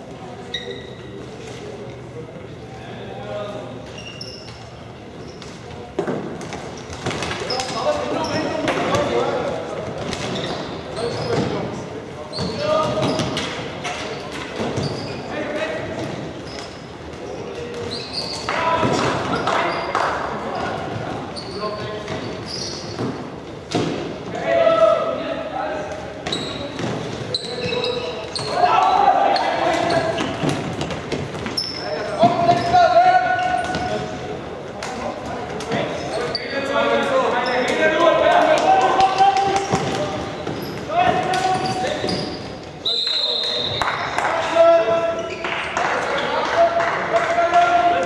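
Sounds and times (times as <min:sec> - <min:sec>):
players shouting: 0:27.6 - 0:30.4.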